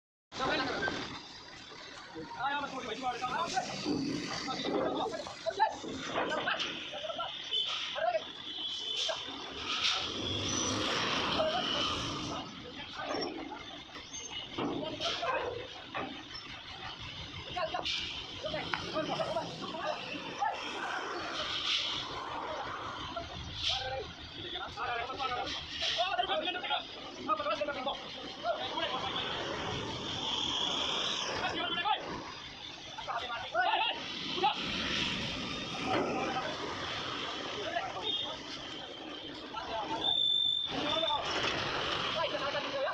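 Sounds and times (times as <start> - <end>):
machinery noise: 0.4 - 42.9
men calling out: 17.4 - 35.0.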